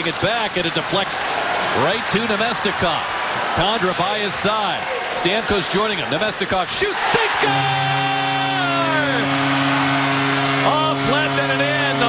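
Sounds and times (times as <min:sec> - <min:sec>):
goal horn low blast: 0:07.4 - 0:12.0.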